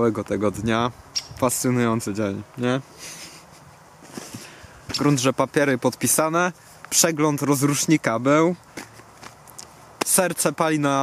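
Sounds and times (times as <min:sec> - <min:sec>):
soft breath: 0:02.9 - 0:04.9.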